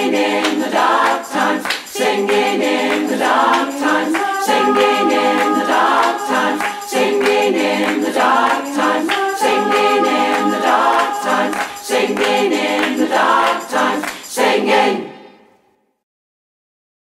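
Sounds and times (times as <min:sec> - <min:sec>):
choir singing: 0:00.0 - 0:15.6.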